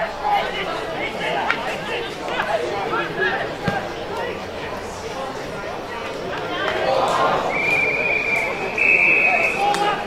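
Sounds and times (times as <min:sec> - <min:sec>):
voices calling and chattering: 0:00.0 - 0:10.0.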